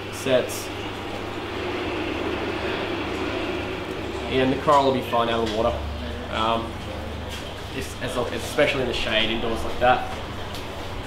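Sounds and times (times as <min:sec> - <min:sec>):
low hum: 0:00.0 - 0:11.0
steady rumbling: 0:00.0 - 0:11.0.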